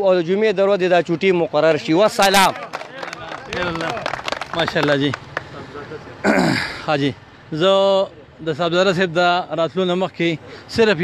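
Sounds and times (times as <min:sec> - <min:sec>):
man speaking into a microphone: 0:00.0 - 0:11.0
man clearing his throat: 0:06.2 - 0:06.9.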